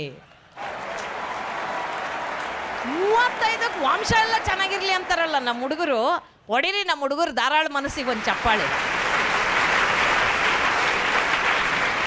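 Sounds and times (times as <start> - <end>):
audience applauding: 0.6 - 5.9, 8.0 - 12.0
woman's voice: 2.9 - 8.8.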